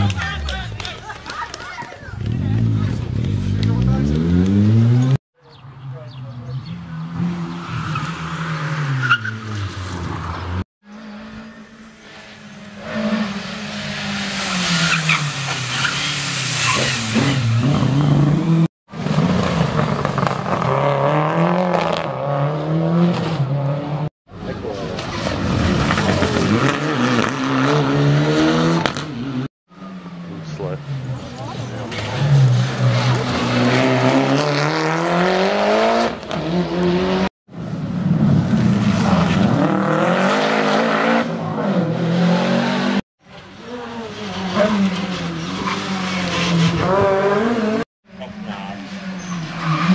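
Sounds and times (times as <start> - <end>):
rally cars accelerating past: 25.0 - 43.0.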